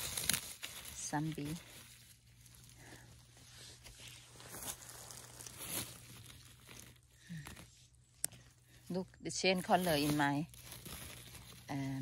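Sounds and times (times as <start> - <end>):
dry grass rustling and crunching: 0.0 - 12.0.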